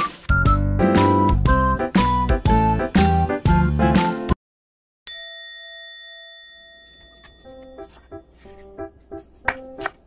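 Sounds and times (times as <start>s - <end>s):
background music: 0.0s - 4.4s, 7.5s - 10.0s
bright chime ringing: 5.1s - 8.4s
faint music with light taps: 7.5s - 10.0s.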